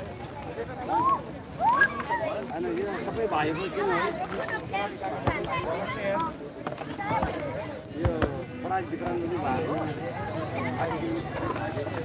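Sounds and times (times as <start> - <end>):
men talking: 7.9 - 12.0.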